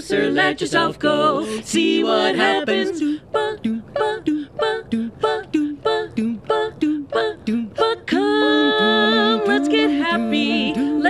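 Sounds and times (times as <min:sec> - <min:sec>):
women singing staccato scat: 0:00.0 - 0:11.0.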